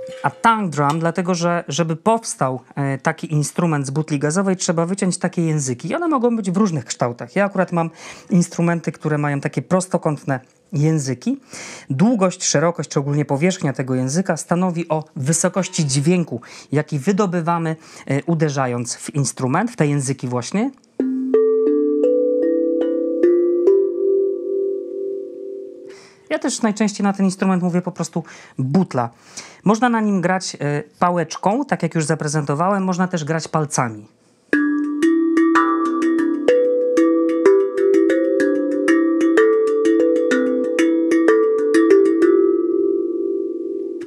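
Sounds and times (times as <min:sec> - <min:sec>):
steel tongue drum melody: 0:00.0 - 0:01.4, 0:21.0 - 0:25.9, 0:34.5 - 0:44.0.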